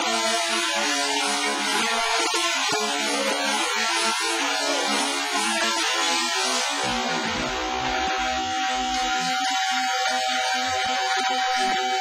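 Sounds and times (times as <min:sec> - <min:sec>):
rock song with guitar: 0:00.0 - 0:12.0.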